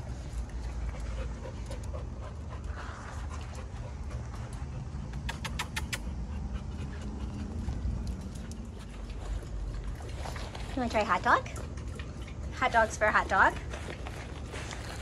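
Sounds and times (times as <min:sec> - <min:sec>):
dog panting: 0:00.0 - 0:15.0
steady low rumble: 0:00.0 - 0:15.0.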